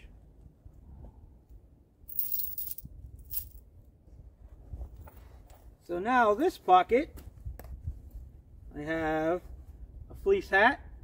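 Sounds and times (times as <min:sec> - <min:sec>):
coins jingling in hands: 0:02.1 - 0:03.6.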